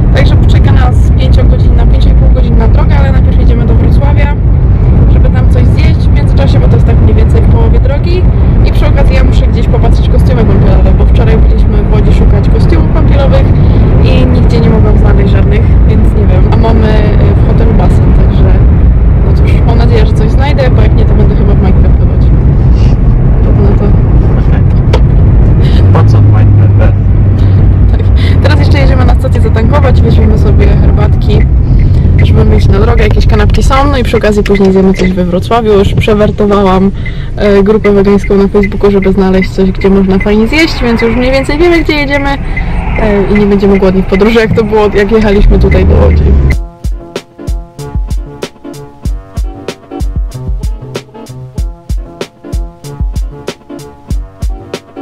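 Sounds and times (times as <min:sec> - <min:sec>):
woman talking: 0:00.0 - 0:04.4, 0:05.0 - 0:22.4, 0:23.4 - 0:46.6
low drone: 0:00.0 - 0:46.8
car cabin rumble: 0:00.0 - 0:55.0.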